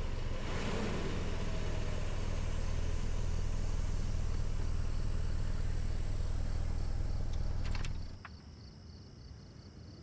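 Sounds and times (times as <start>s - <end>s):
crickets chirping: 1.8s - 10.0s.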